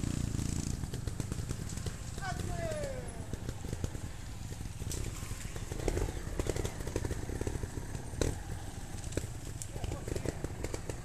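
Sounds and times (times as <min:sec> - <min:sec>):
distant motorcycle engine: 0:00.0 - 0:11.0.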